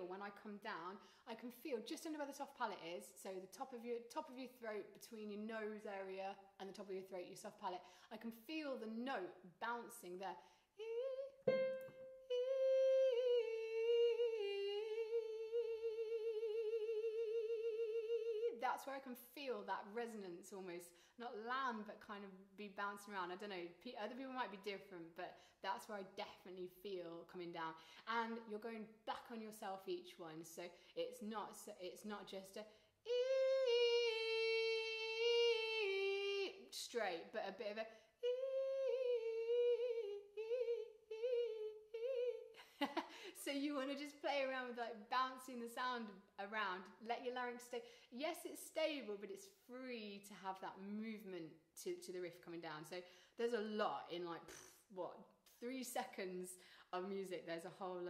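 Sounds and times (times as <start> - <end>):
woman singing a held note: 10.9 - 18.6, 38.2 - 42.6.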